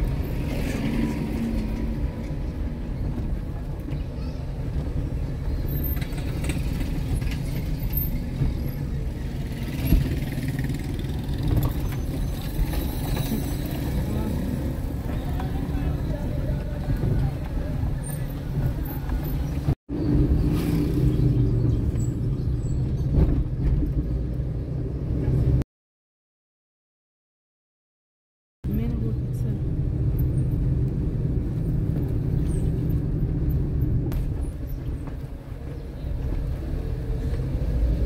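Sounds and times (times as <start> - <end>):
car engine and tyres rumbling: 0.0 - 25.6, 28.7 - 38.0.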